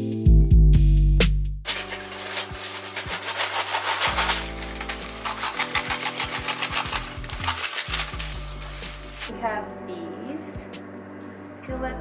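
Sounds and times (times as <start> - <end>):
background music: 0.0 - 12.0
paper rustling: 1.7 - 9.3.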